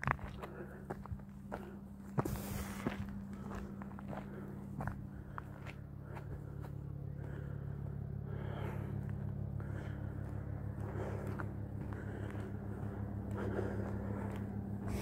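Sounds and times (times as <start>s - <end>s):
footsteps crunching on gravel and leaves: 0.0s - 7.4s
steady low hum: 0.0s - 15.0s.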